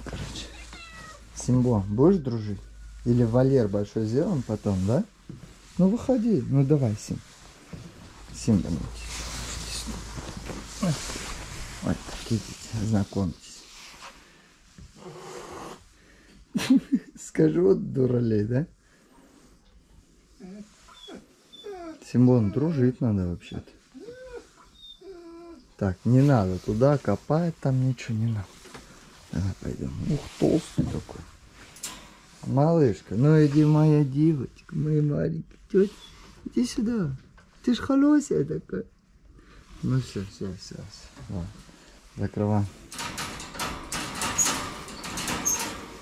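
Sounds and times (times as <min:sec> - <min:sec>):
cat meowing faintly: 0:00.2 - 0:02.9
metal mesh rattling: 0:42.8 - 0:46.0.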